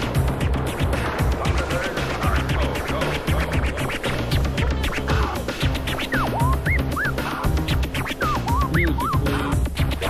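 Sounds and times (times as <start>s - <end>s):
dance music with steady beat: 0.0s - 10.0s
records scratched on turntables: 0.0s - 10.0s.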